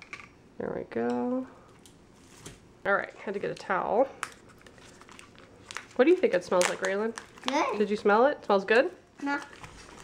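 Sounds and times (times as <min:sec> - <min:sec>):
plastic pouch crinkling: 0:04.4 - 0:08.0.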